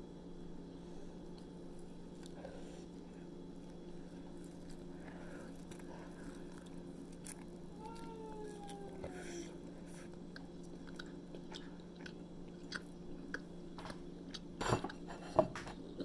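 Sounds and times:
low hum: 0.0 - 16.0
close-up chewing: 1.2 - 16.0
crunchy bites: 1.3 - 9.3.

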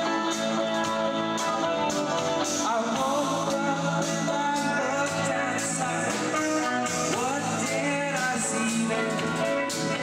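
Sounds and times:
electric guitar: 0.0 - 10.0
live band playing: 0.0 - 10.0.

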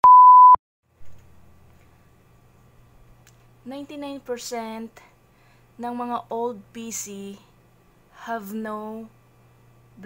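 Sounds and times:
electronic beep: 0.0 - 0.6.

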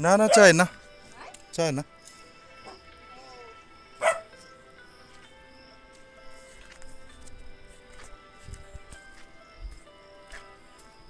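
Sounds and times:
background music: 0.0 - 11.0
dog bark: 0.2 - 1.3, 4.0 - 4.3.

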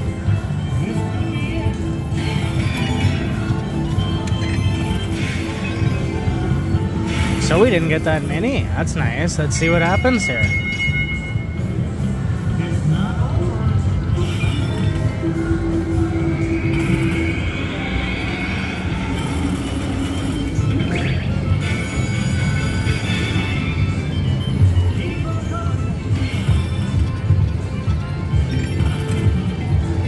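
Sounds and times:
slot machine music: 0.0 - 30.0
slot machine chiming effects: 0.4 - 12.3, 14.1 - 30.0.

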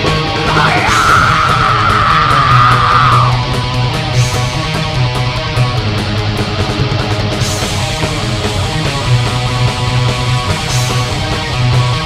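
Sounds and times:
long high lead guitar note: 0.0 - 6.0
heavy metal band playing live: 0.0 - 12.0.

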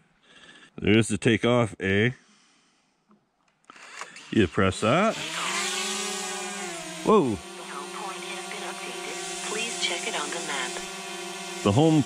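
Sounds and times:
drone propellers buzzing whine: 4.2 - 12.0.

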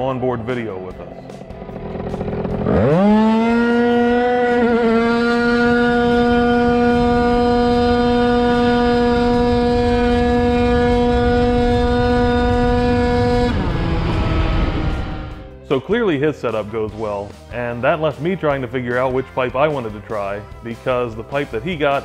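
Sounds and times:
scooter engine at full throttle: 0.5 - 15.6.

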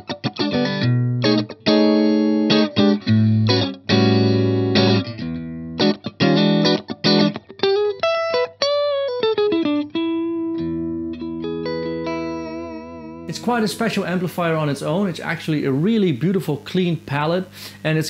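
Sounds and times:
clean electric guitar: 0.0 - 17.8.

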